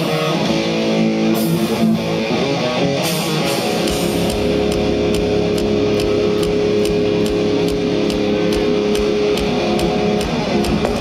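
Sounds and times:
distorted electric guitars: 0.0 - 11.0
steady drum beat: 3.4 - 11.0.

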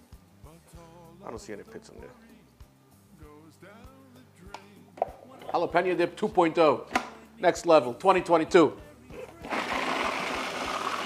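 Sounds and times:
quiet background music: 0.0 - 11.0.

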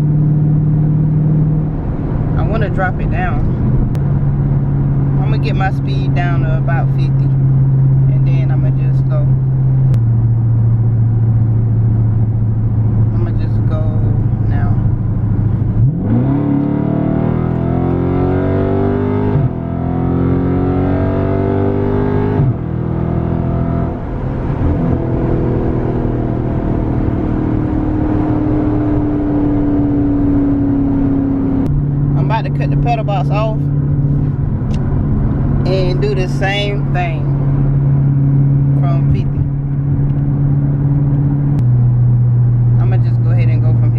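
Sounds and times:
car engine revving: 0.0 - 43.9.

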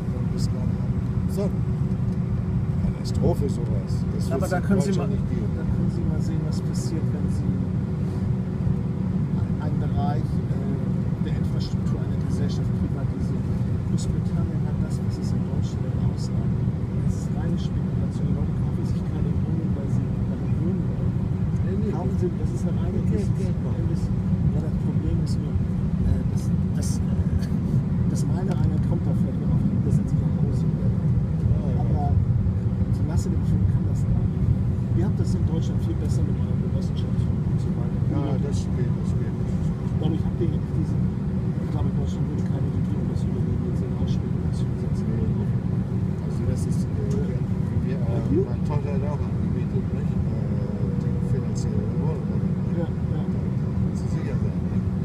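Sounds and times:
airliner cabin low rumble: 0.0 - 55.0
murmur of passengers talking: 0.0 - 55.0.

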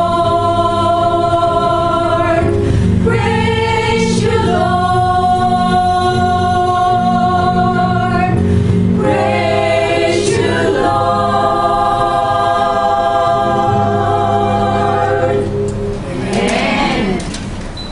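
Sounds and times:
choir singing: 0.0 - 8.4, 9.0 - 17.2.

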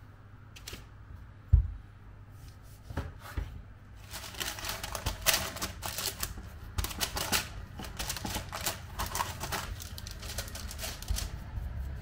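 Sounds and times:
baking parchment crackling: 4.0 - 12.0.

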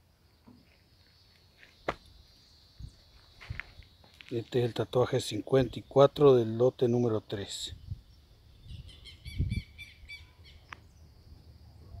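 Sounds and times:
small bird chirping: 7.7 - 12.0.

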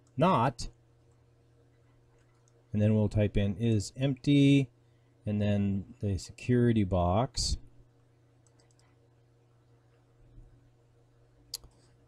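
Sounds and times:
low steady hum: 0.0 - 12.0
computer mouse clicks: 2.1 - 2.6, 8.4 - 9.0, 11.5 - 11.9.

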